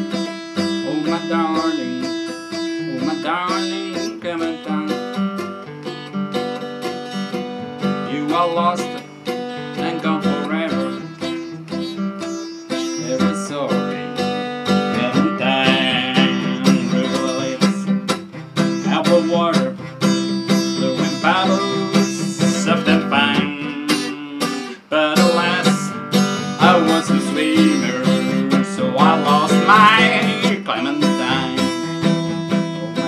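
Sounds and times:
acoustic guitar strumming chords: 0.0 - 33.0.

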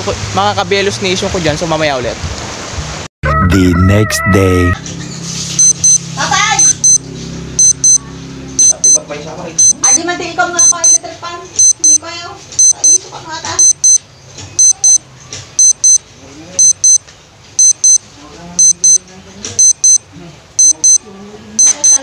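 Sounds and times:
electronic alarm double beeps: 5.6 - 6.0, 6.6 - 7.0, 7.6 - 8.0, 8.6 - 9.0, 9.6 - 10.0, 10.6 - 11.0, 11.6 - 12.0, 12.6 - 13.0, 13.6 - 14.0, 14.6 - 15.0, 15.6 - 16.0, 16.6 - 17.0, 17.6 - 18.0, 18.6 - 19.0, 19.6 - 21.0, 21.6 - 22.0.

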